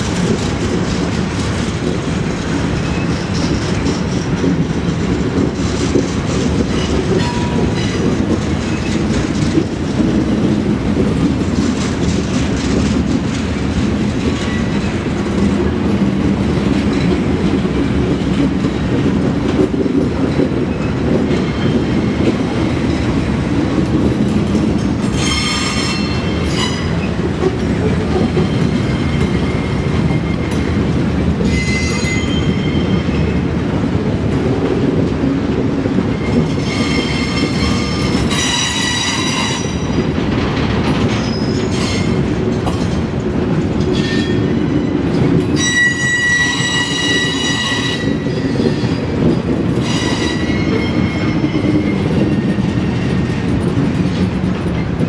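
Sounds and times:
train wheels rumbling on rail: 0:00.0 - 0:55.0
high-pitched wheel squeal: 0:45.6 - 0:48.2.

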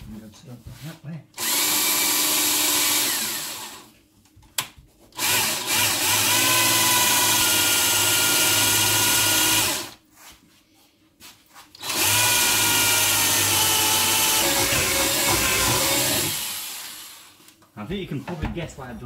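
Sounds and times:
cordless drill boring into wood: 0:01.4 - 0:03.9, 0:05.2 - 0:10.0, 0:11.8 - 0:17.3.

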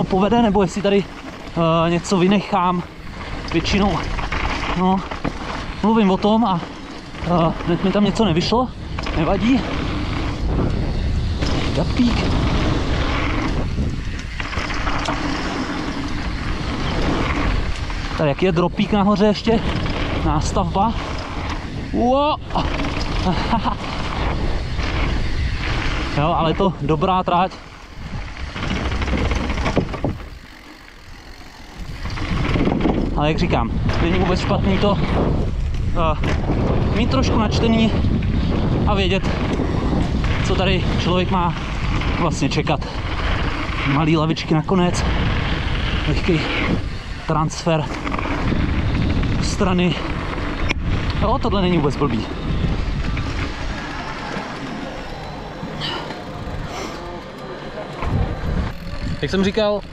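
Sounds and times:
bike tyres rumbling over wooden planks: 0:00.0 - 0:59.9
wind on microphone: 0:00.0 - 0:59.9.

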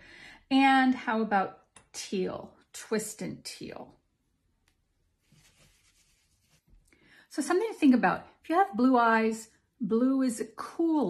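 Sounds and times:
soft rubbing sounds: 0:05.1 - 0:07.0.

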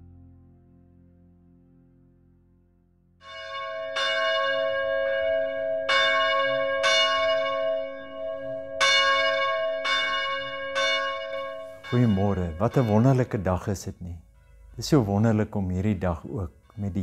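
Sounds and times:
church bells ringing: 0:03.2 - 0:17.0.

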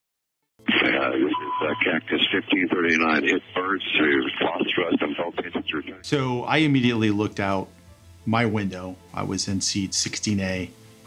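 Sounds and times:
voice over radio link: 0:00.7 - 0:06.1.

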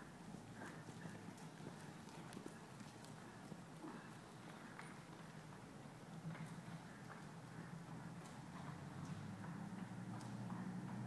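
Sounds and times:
horse hoofbeats on soft dirt: 0:00.0 - 0:11.0.

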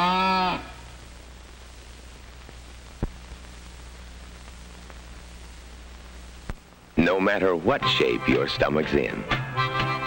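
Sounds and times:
cartoon animal call: 0:00.0 - 0:00.8
faint soundtrack hiss: 0:00.0 - 0:10.0.

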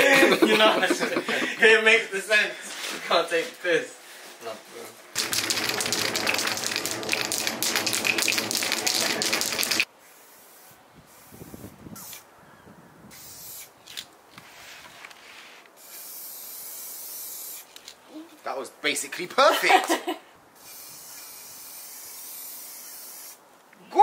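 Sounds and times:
spray can rattling: 0:05.2 - 0:09.9, 0:20.6 - 0:23.4
spray paint hissing: 0:05.2 - 0:12.2, 0:13.1 - 0:13.8, 0:15.8 - 0:17.8, 0:20.6 - 0:23.4.

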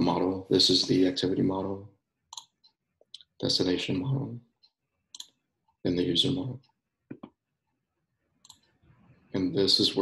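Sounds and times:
computer mouse clicks: 0:02.3 - 0:03.3, 0:08.4 - 0:08.8.

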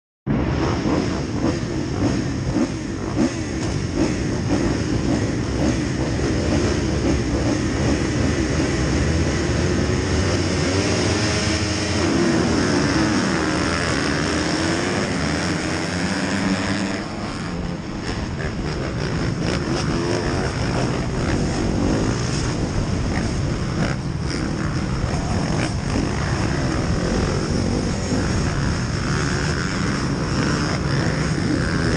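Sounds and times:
motocross bikes revving: 0:00.3 - 0:31.9.

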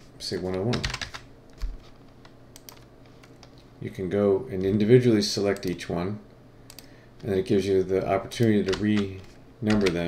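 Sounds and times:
computer keyboard taps: 0:09.7 - 0:10.0.

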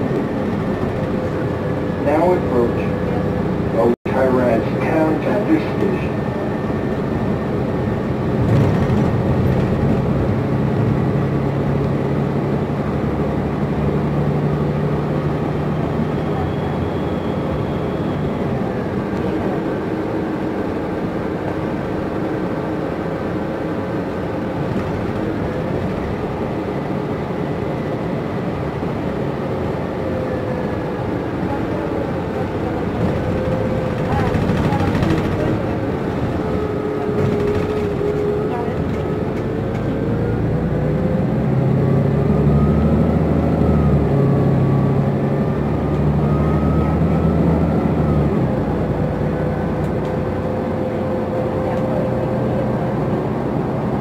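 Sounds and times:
bus engine drone: 0:00.0 - 0:54.0
road rumble: 0:00.0 - 0:54.0.

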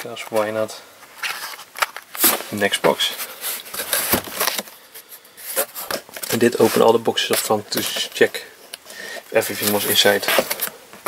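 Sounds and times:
cardboard rubbing and scraping: 0:05.4 - 0:08.3, 0:09.4 - 0:10.7.

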